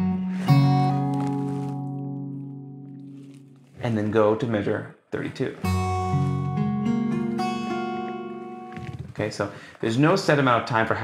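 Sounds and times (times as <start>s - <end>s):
fingerstyle acoustic guitar: 0.0s - 4.3s, 5.5s - 9.4s.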